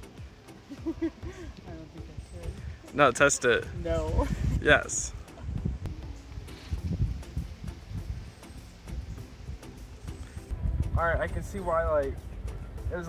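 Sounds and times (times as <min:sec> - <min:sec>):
wind buffeting microphone: 0:01.2 - 0:02.9, 0:03.6 - 0:13.0.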